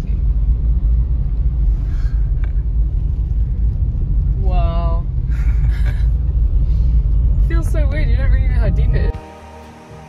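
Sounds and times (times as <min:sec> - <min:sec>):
low rumble inside car cabin: 0:00.0 - 0:10.0.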